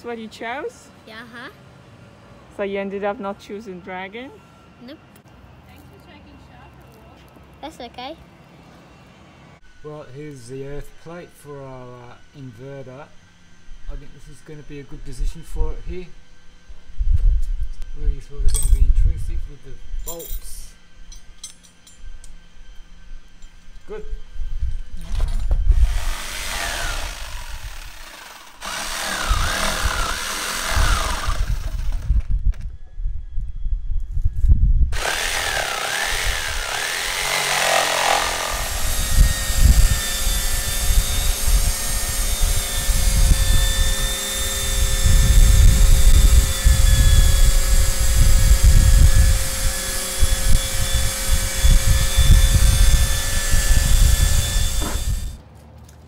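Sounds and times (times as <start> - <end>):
electric power tools: 10.2 - 18.3, 19.2 - 32.8, 34.9 - 55.4
shop vacuum motor whine: 22.4 - 55.4.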